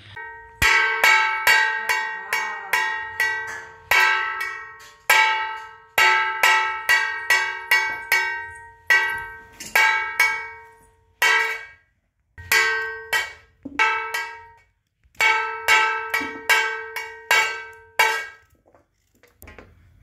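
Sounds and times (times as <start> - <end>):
metal spoon striking steel plate: 0.1 - 11.8, 12.4 - 14.6, 15.2 - 18.4.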